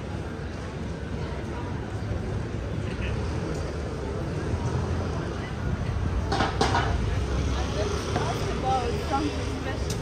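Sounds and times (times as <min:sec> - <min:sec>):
low rumble of traffic: 0:00.0 - 0:10.0
passers-by talking: 0:00.0 - 0:10.0.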